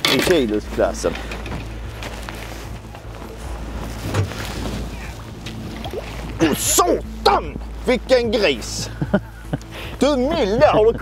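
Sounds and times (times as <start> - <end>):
water noise: 0.0 - 9.7
boat motor humming: 0.0 - 11.0
wind: 0.0 - 11.0.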